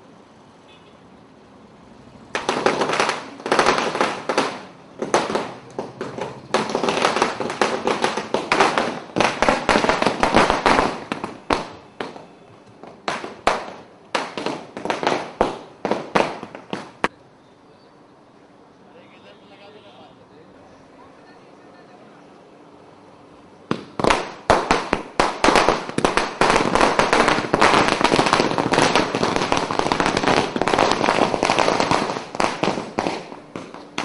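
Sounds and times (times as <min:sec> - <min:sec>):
firecrackers cracking: 0:02.3 - 0:17.2, 0:23.6 - 0:34.0.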